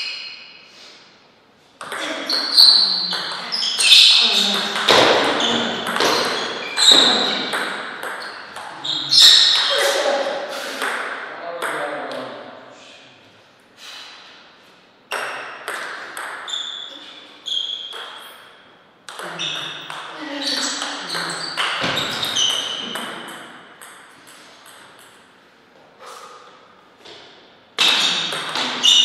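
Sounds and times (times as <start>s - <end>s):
table tennis ball hits: 1.8s - 9.8s, 10.8s - 12.2s, 15.1s - 16.8s, 17.8s - 18.3s, 19.0s - 25.3s, 27.1s - 29.0s.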